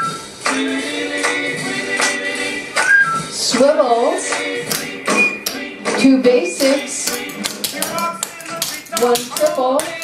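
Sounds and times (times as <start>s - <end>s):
pop song with singing: 0.0s - 10.0s.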